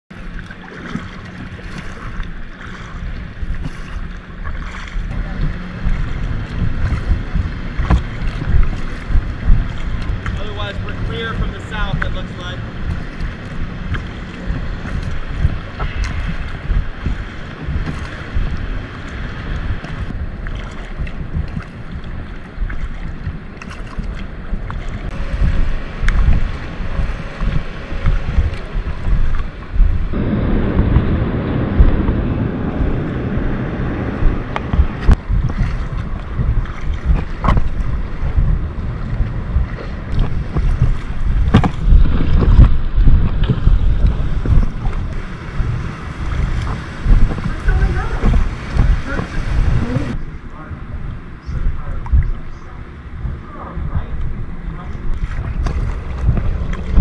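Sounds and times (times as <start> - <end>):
river water rushing: 0.1 - 51.9
paddle dipping and splashing: 0.1 - 57.0
wind buffeting microphone: 0.1 - 57.0.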